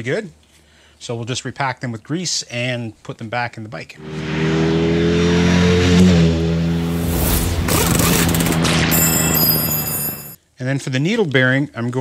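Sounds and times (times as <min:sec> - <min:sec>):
engine revving: 0:04.0 - 0:09.8
whooshing sweep: 0:06.6 - 0:08.9
high ringing tones: 0:08.7 - 0:10.4.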